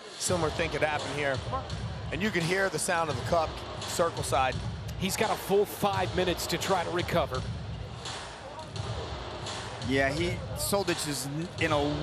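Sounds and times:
murmur of distant crowd voices: 0.0 - 12.0
commentator speaking: 0.3 - 7.4.

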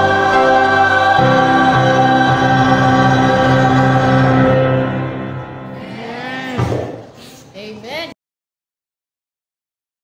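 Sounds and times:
choir singing in harmony: 0.0 - 6.1.

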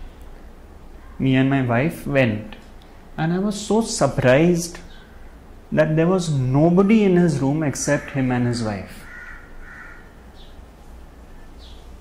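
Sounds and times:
steady low hum: 0.0 - 12.0
crow cawing: 9.0 - 10.3.

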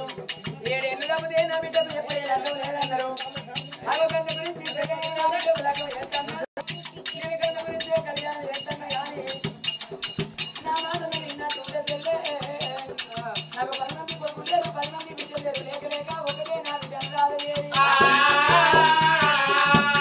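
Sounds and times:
barrel drum: 0.0 - 20.0
rattling percussion beat: 0.0 - 20.0
person singing: 10.6 - 20.0
loud voice: 17.7 - 20.0.

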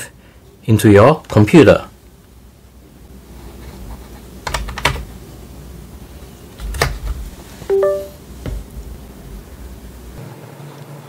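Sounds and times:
rising two-note computer chime: 7.7 - 8.2.

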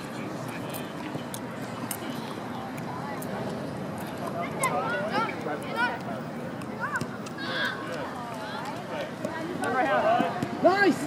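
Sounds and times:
children and spectators calling out: 6.8 - 8.7.

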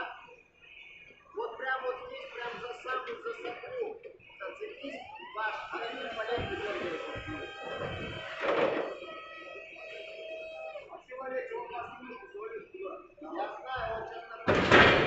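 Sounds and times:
forklift hydraulic motor whining: 5.0 - 10.8
loud knock: 13.8 - 15.0.

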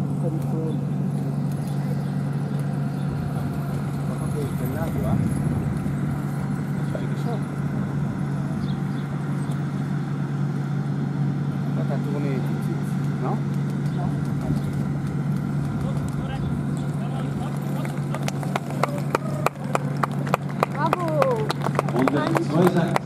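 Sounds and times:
crowd voices outdoors: 0.0 - 23.0
low hum: 0.0 - 23.0
horse hoofbeats trotting: 13.6 - 23.0.

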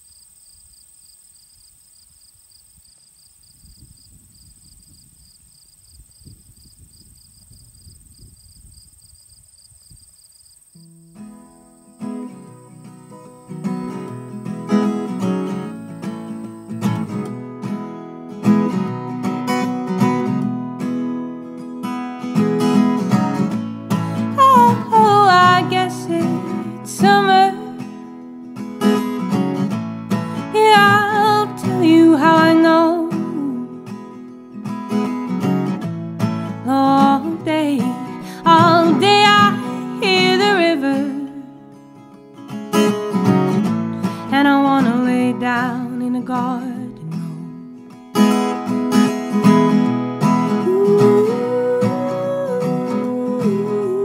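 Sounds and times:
insect trilling: 0.0 - 17.2
acoustic guitar playing: 10.8 - 54.0.

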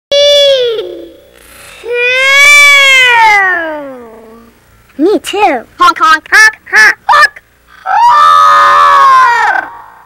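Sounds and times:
child calling out: 0.1 - 1.2, 1.9 - 4.5.

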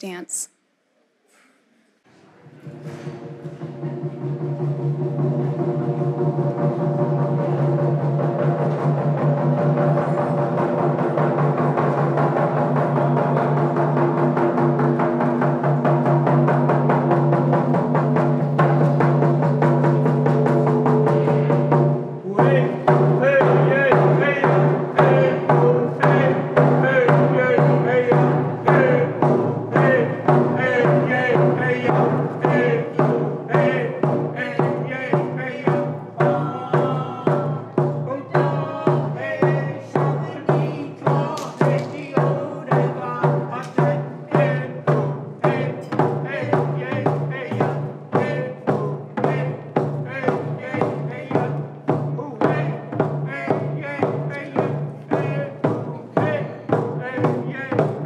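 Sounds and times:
frame drums beating: 2.6 - 58.0
group singing: 20.8 - 52.8.

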